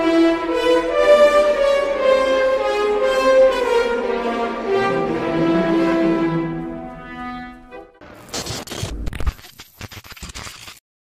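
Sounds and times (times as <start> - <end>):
held orchestral chord: 0.0 - 8.1
crackling static glitch noise: 8.0 - 10.8.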